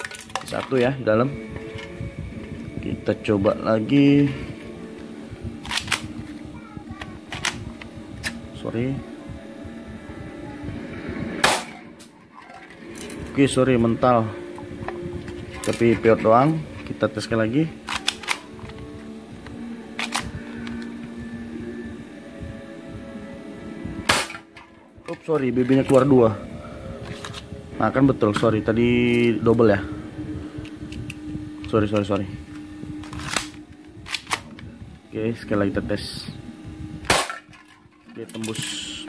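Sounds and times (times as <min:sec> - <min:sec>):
airsoft pistol shot: 0:11.4 - 0:11.8, 0:24.1 - 0:24.4, 0:37.1 - 0:37.4.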